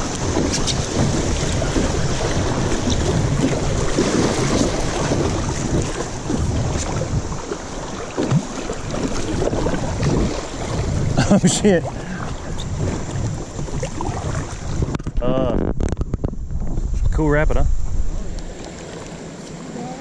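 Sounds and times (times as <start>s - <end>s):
paddle strokes splashing: 0.0s - 15.2s, 17.8s - 20.0s
wind buffeting microphone: 0.0s - 19.8s.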